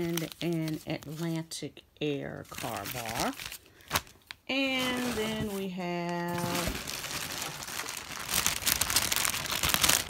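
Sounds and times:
crinkly plastic packaging handled: 0:00.0 - 0:01.5, 0:02.4 - 0:10.0.

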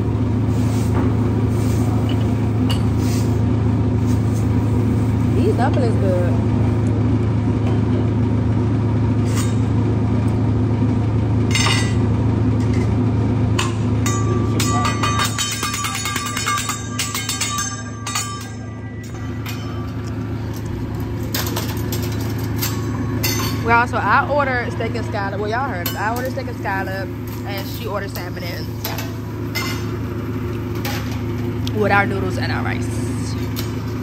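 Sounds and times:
restaurant ambience hum: 0:00.0 - 0:34.0
utensils clinking on dishes: 0:02.0 - 0:03.0, 0:11.5 - 0:13.0, 0:13.6 - 0:30.0, 0:30.7 - 0:34.0.

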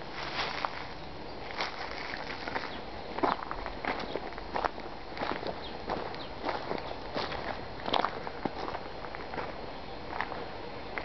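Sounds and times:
footsteps on dry leaves: 0:00.0 - 0:10.4.

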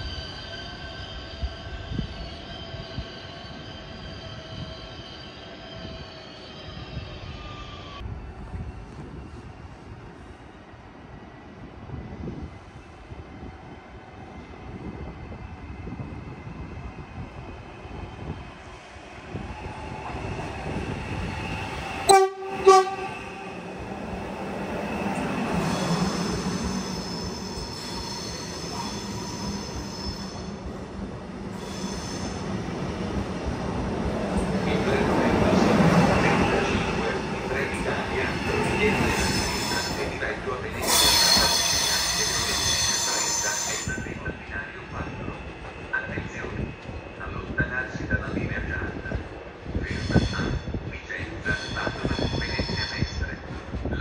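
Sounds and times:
train pulling in: 0:00.0 - 0:54.0
train horn blasts: 0:22.1 - 0:23.6.

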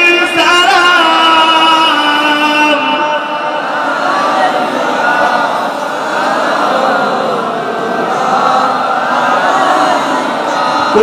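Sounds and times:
crowd of men chanting: 0:00.8 - 0:11.0.

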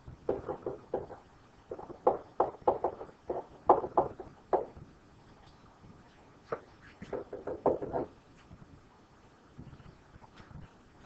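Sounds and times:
stylus tapping on tablet: 0:00.3 - 0:04.7, 0:07.0 - 0:08.1.

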